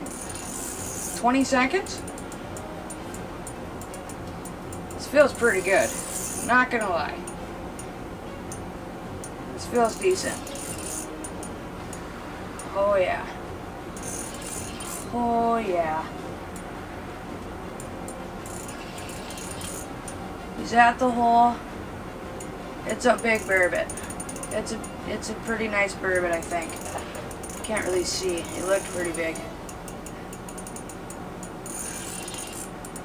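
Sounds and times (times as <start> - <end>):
fishing reel clicks and rattles: 0.0 - 3.2, 3.8 - 6.6, 9.7 - 12.0, 14.0 - 15.1, 18.4 - 20.2, 23.1 - 33.0
low background noise: 0.0 - 33.0
steady low hiss: 0.0 - 33.0.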